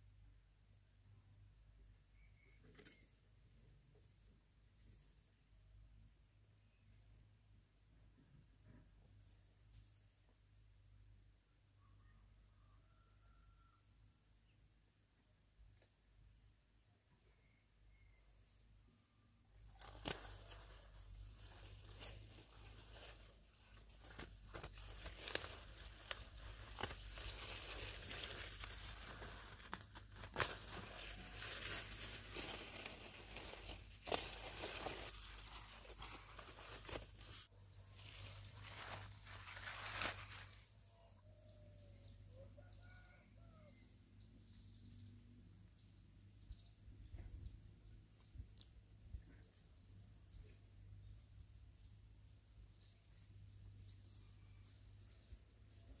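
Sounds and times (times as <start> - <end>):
faint chirps: 1.8 - 3.4, 17.1 - 19.3
leaves rustling and crackling: 19.6 - 40.8
stalks snapping: 19.8 - 20.6, 24.1 - 35.2.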